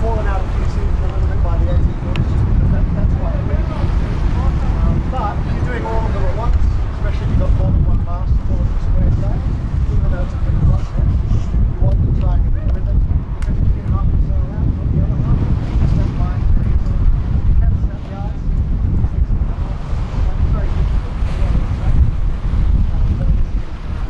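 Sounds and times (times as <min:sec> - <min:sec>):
wind blowing across microphone: 0:00.0 - 0:24.0.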